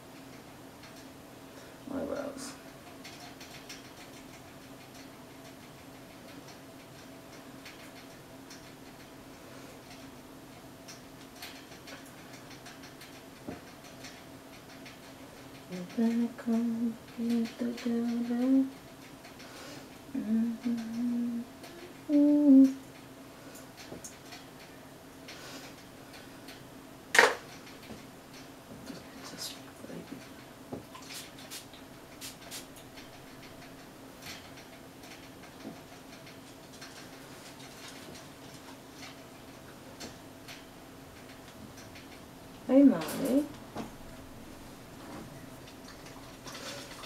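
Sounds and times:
low room hum: 0.0s - 47.0s.

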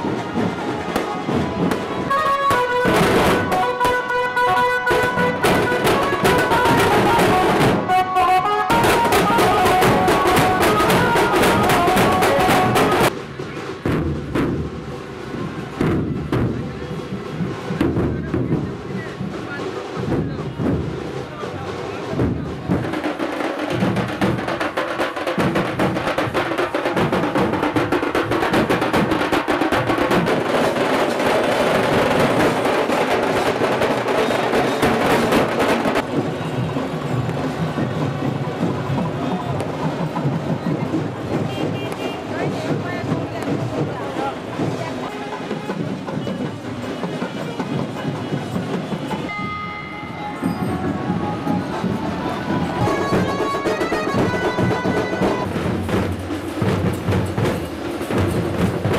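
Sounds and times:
crowd voices: 0.0s - 58.9s
fast drum beat: 4.8s - 8.0s, 8.7s - 49.3s, 50.4s - 58.9s.

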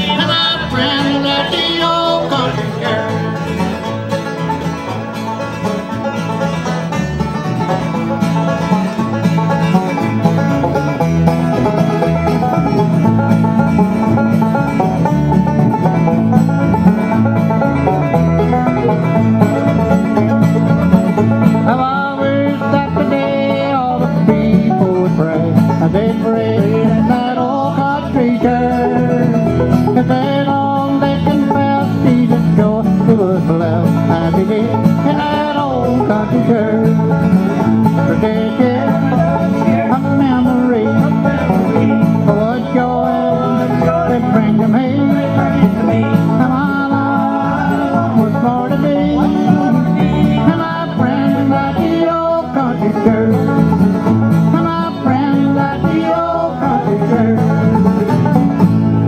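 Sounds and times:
banjo picking: 0.0s - 59.0s
mandolin: 0.0s - 59.0s
strummed acoustic guitars: 0.0s - 59.0s.

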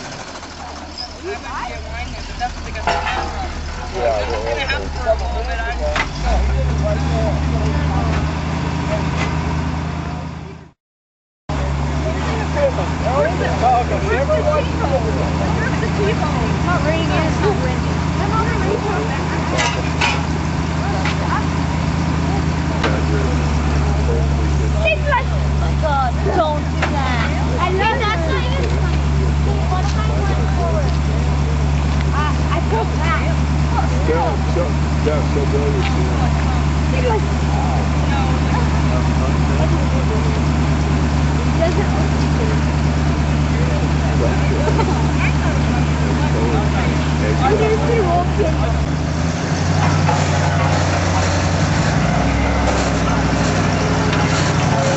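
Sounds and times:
faint voices talking: 0.0s - 10.8s, 11.5s - 54.9s
vehicle engine running: 0.0s - 10.8s, 11.5s - 54.9s.

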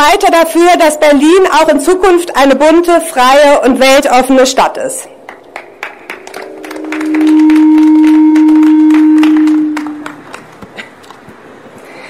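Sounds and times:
microphone feedback howl: 5.7s - 10.4s.

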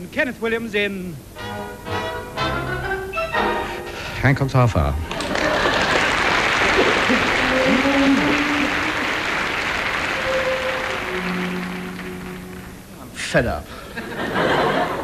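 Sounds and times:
audience applauding: 5.0s - 12.9s.

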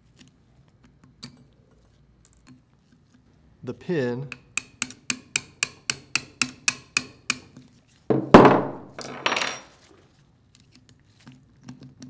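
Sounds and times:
hammer tapping steel punch: 4.3s - 7.5s.

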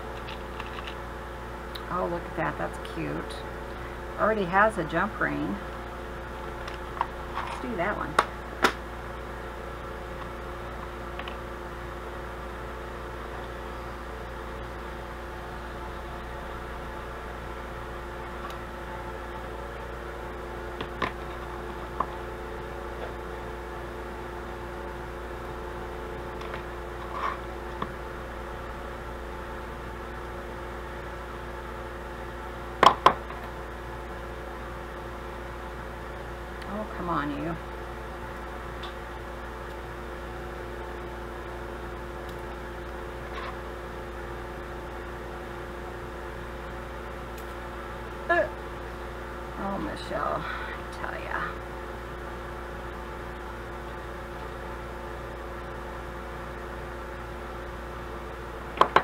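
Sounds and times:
steady background hum: 0.0s - 59.0s.

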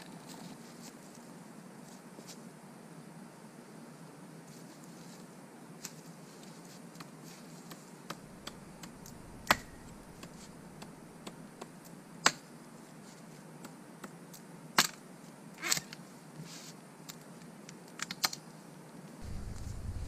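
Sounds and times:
hatchet chopping wood: 8.1s - 12.4s.

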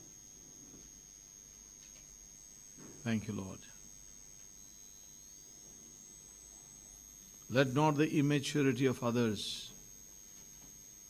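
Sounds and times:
thin high-pitched whine: 0.0s - 11.0s.

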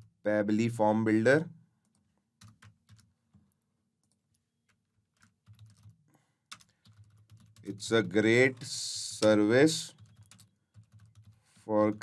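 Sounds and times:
soft keystrokes on keyboard: 1.8s - 7.7s, 8.5s - 12.0s.

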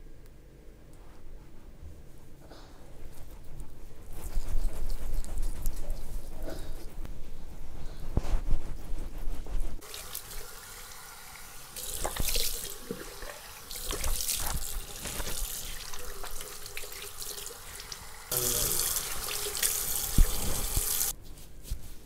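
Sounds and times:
water running from a tap: 9.8s - 21.1s
water splashing on face: 11.8s - 21.1s.

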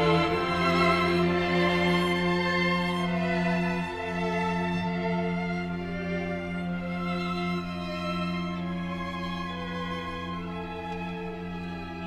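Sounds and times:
string ensemble bowed chords: 0.0s - 12.0s.

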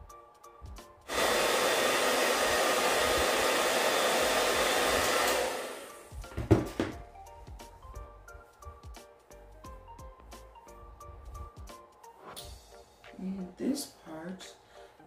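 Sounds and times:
hair dryer blowing: 1.0s - 6.9s
short thump: 6.3s - 7.0s.

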